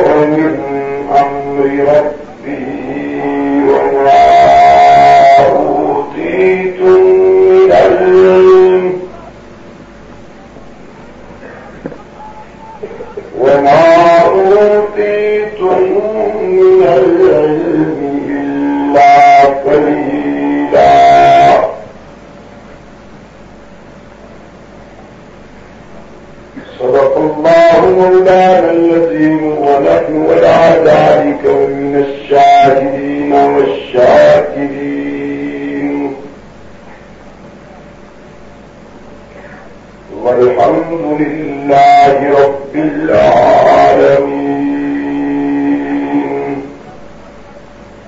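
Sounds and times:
voice chanting a long note: 0:00.0 - 0:09.4, 0:10.4 - 0:22.0, 0:26.5 - 0:36.9, 0:39.3 - 0:47.7
steady low hiss: 0:00.0 - 0:48.0.

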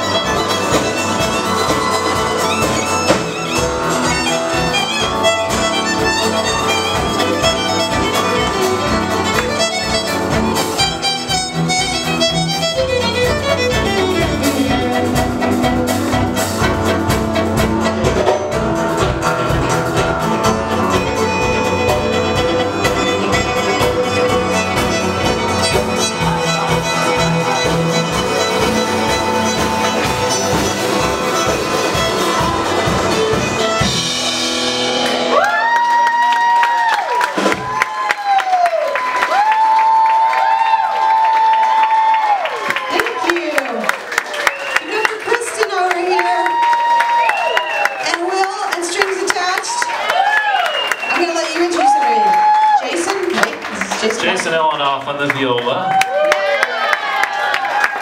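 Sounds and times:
audience cheering and whooping: 0:00.0 - 0:11.0, 0:23.2 - 0:54.4, 0:55.5 - 0:58.0
acoustic string band playing: 0:00.0 - 0:35.8, 0:39.1 - 0:57.9.

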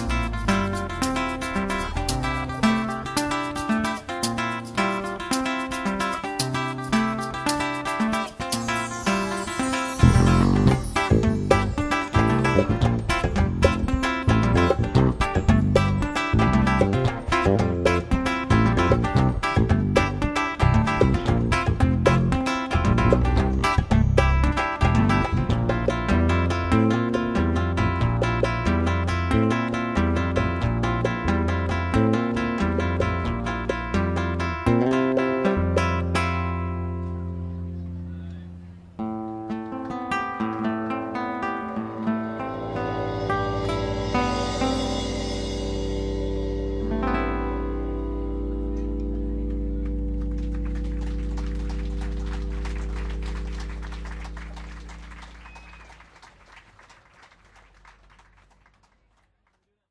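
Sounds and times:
bass line: 0:00.0 - 0:05.2, 0:08.6 - 0:39.2, 0:41.1 - 0:55.9
acoustic guitar picking: 0:00.0 - 0:54.8
acoustic band final chord: 0:40.6 - 0:55.3
audience clapping: 0:49.4 - 0:59.9.

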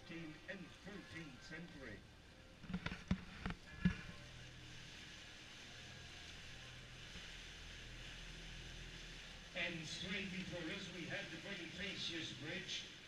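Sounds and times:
boat motor humming: 0:00.0 - 0:13.0
water and hull noise: 0:00.0 - 0:13.0.

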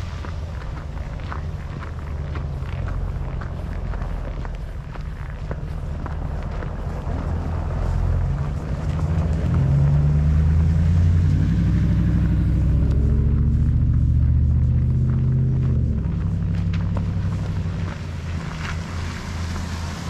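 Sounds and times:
vehicle engine running: 0:00.0 - 0:20.0.

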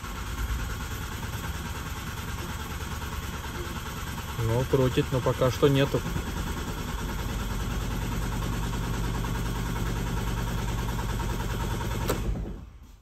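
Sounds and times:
diesel engine cranking on starter: 0:00.0 - 0:13.0.

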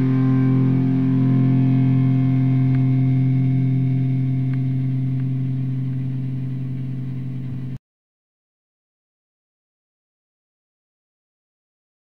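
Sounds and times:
distorted electric guitar chord: 0:00.0 - 0:07.8.

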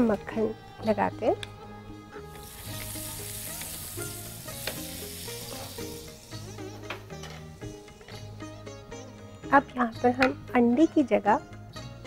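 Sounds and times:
butter sizzling on grill pan: 0:02.4 - 0:06.6.

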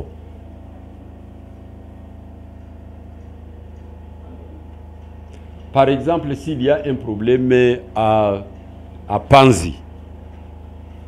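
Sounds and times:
steady low motor hum: 0:00.0 - 0:11.0.

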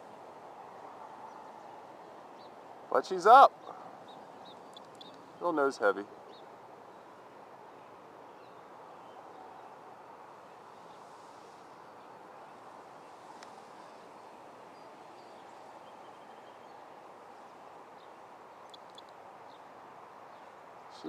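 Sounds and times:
birds chirping: 0:00.0 - 0:21.0
outdoor background hiss: 0:00.0 - 0:21.0.

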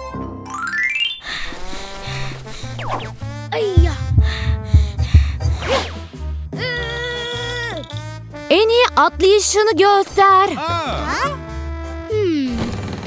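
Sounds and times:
cartoon background music: 0:00.0 - 0:12.8
gliding cartoon sound effects: 0:00.6 - 0:03.3.

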